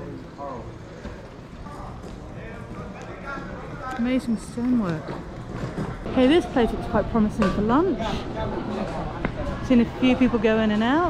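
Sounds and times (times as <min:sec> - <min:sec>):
low street rumble: 0:00.0 - 0:11.0.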